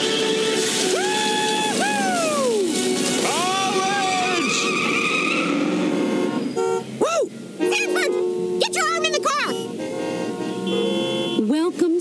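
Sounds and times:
background music: 0:00.0 - 0:06.8
cartoon tyres screeching: 0:00.0 - 0:11.5.

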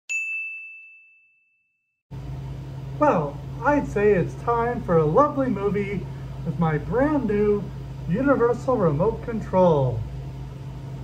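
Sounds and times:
bell ding: 0:00.1 - 0:01.9.

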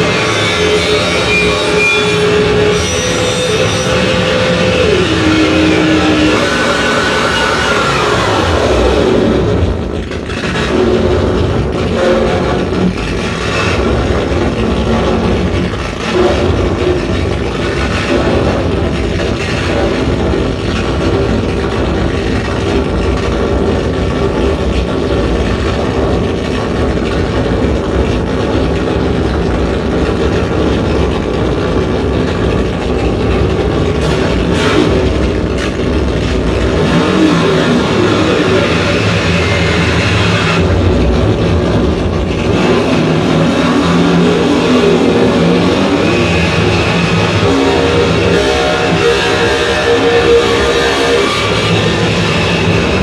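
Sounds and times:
distorted electronic noise: 0:00.0 - 0:53.0.

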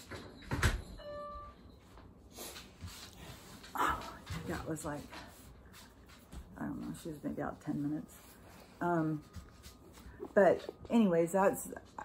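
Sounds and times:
soft knocks of movement: 0:01.9 - 0:11.2.

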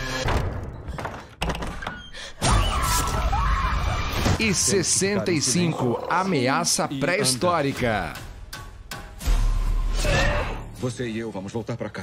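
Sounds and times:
horror trailer music: 0:07.7 - 0:11.2.

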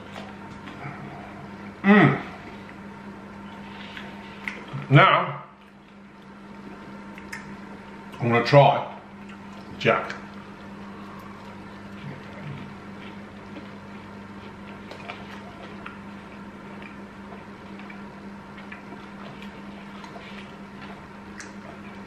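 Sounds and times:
person chewing: 0:00.0 - 0:04.9, 0:09.2 - 0:22.0
steady low hum: 0:00.0 - 0:22.0.

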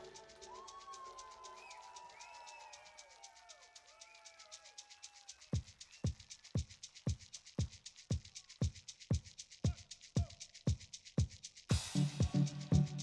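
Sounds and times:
ticking hi-hat: 0:00.0 - 0:13.0
deep kick drum: 0:11.7 - 0:13.0.

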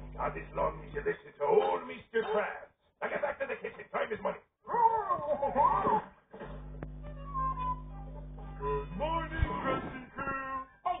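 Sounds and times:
steady low hum: 0:00.0 - 0:01.1, 0:06.4 - 0:10.3
cartoon music through tv speaker: 0:07.2 - 0:11.0.

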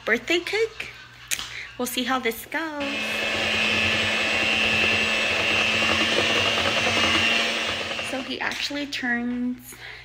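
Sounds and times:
electric hand mixer whirring: 0:02.8 - 0:08.6.

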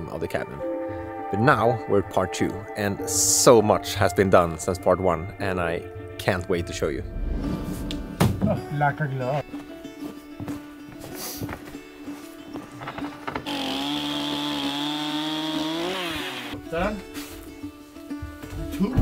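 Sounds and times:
background music: 0:00.0 - 0:19.0
chainsaw cutting through board: 0:13.4 - 0:16.6.

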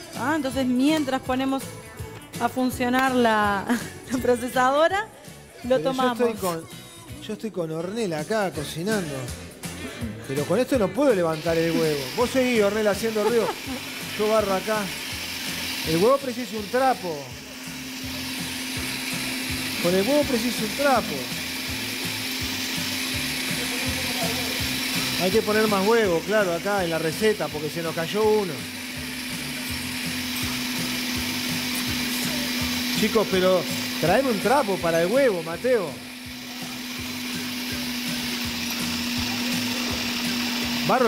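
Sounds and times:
food processor running: 0:00.0 - 0:00.8, 0:11.2 - 0:41.0.

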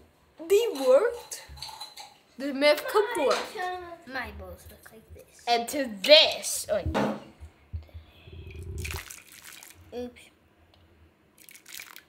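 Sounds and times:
water splashing in plastic tray: 0:08.8 - 0:09.9, 0:11.4 - 0:12.0.

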